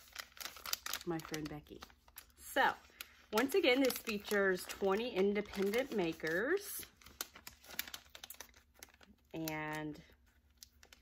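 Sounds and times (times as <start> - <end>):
package clicks and crinkles: 0.0 - 2.3, 2.9 - 11.0.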